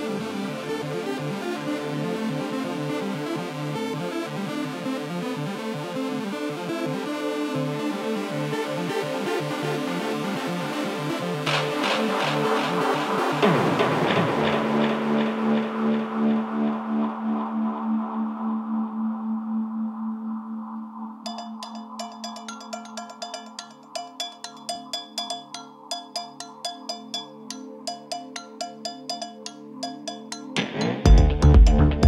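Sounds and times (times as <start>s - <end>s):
electronic dance music: 11.0s - 16.0s, 21.3s - 32.0s
crisp percussive ticks: 21.3s - 30.7s
held synth chords: 21.3s - 32.0s.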